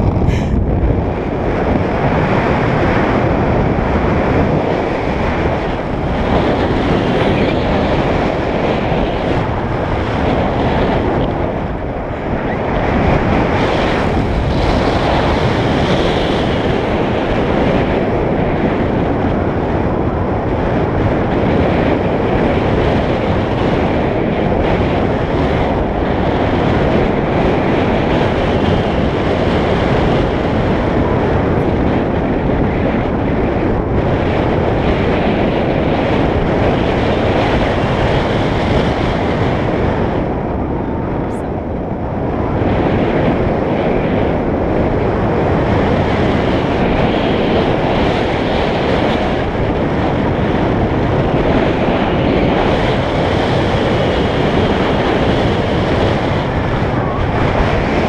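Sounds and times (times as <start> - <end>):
rush of air buffeting microphone: 0.0 - 58.0.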